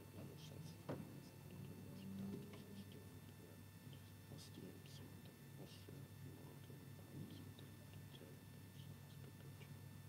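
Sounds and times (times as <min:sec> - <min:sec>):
low room hum: 0:00.0 - 0:10.0
person whispering: 0:00.3 - 0:09.8.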